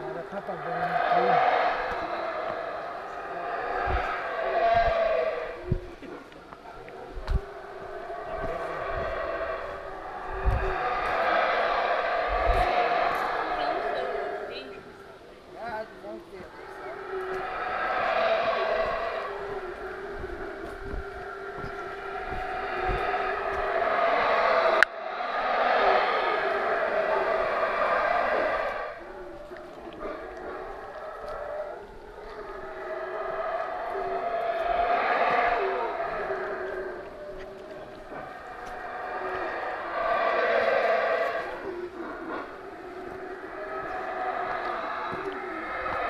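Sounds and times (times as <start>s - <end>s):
howler monkeys roaring: 0.0s - 46.0s
low thumps: 1.4s - 6.4s, 7.0s - 13.6s, 17.3s - 25.6s
low thuds from walking: 1.8s - 13.6s, 17.3s - 24.9s.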